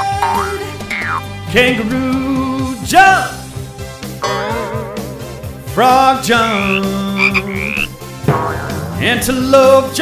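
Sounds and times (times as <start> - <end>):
frog croaking: 0.0 - 1.3, 6.3 - 9.0
backing music: 0.0 - 10.0.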